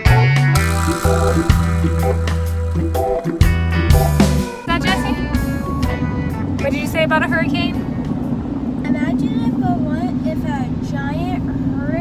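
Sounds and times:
car road and engine noise: 0:06.1 - 0:12.0.

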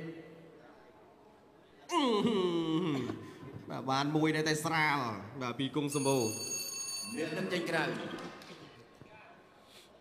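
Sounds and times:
boxing ring bell: 0:05.9 - 0:07.8.

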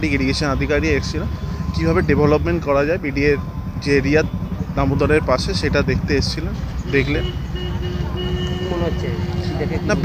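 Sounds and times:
man speaking: 0:00.0 - 0:07.4, 0:08.6 - 0:10.0.

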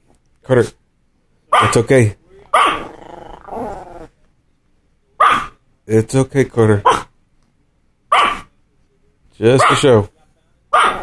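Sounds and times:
small dog barking: 0:01.5 - 0:01.8, 0:02.5 - 0:02.9, 0:05.2 - 0:05.6, 0:06.8 - 0:07.1, 0:08.1 - 0:08.5, 0:09.6 - 0:09.9, 0:10.7 - 0:11.0
dog growling: 0:02.6 - 0:04.2.

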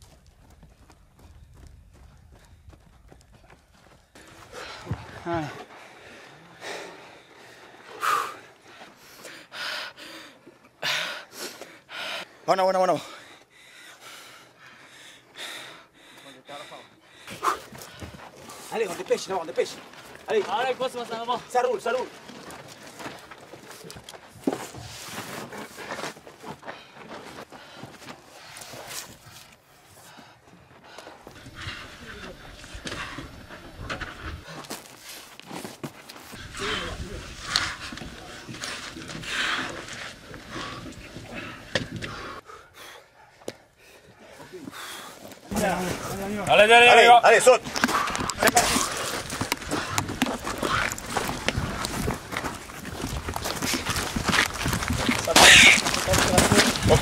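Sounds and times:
person shouting a command: 0:46.4 - 0:47.6.

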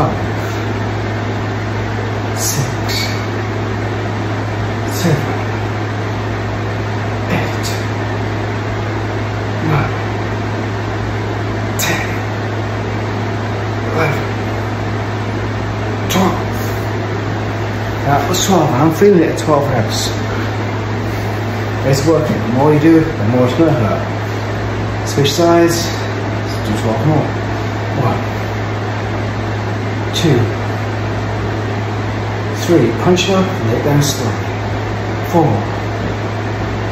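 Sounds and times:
low mechanical hum: 0:00.0 - 0:36.9.

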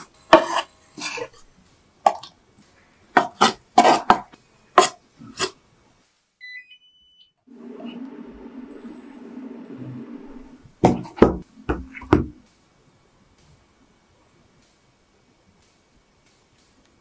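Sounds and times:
rising electronic beeps: 0:06.4 - 0:12.4.

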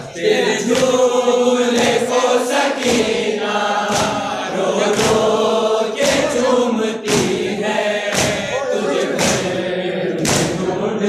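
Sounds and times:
men chanting together: 0:00.0 - 0:11.0
rhythmic chest-beating: 0:00.0 - 0:11.0.

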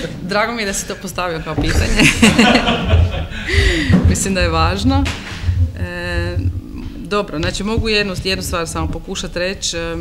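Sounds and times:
woman laughing: 0:01.6 - 0:04.2
man laughing: 0:01.9 - 0:03.9.

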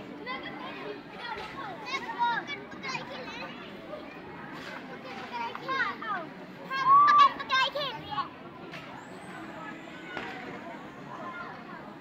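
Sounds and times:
children calling out and squealing: 0:05.4 - 0:08.3.

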